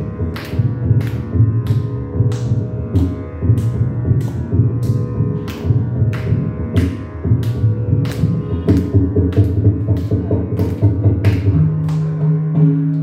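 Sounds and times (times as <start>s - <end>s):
steady low drone: 0.0s - 12.0s
mridangam drum strokes: 0.0s - 13.0s.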